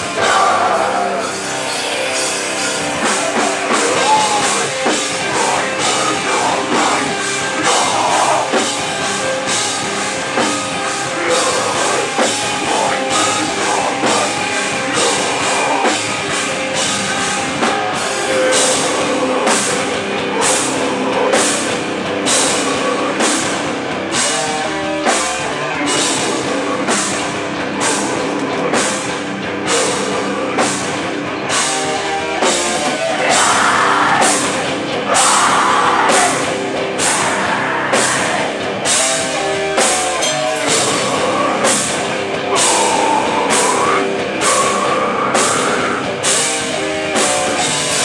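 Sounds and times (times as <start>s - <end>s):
distorted electric guitars: 0.0s - 48.0s
drum kit: 0.0s - 48.0s
metal band playing live: 0.0s - 48.0s.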